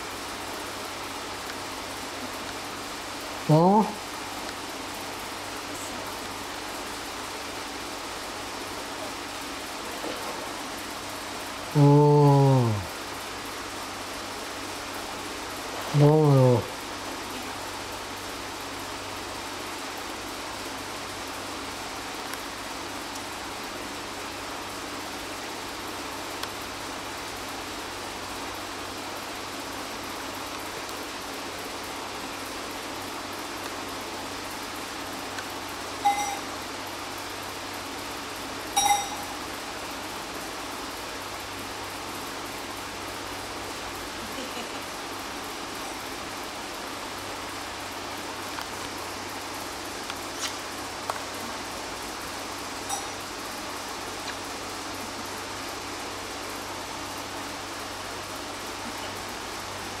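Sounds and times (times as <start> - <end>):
steady background hiss: 0.0 - 60.0
light metallic clinks: 36.0 - 36.5, 38.8 - 39.4, 52.9 - 53.2.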